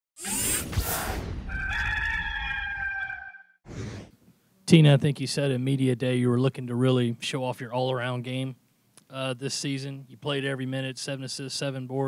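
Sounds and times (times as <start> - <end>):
rooster crow: 1.4 - 3.6.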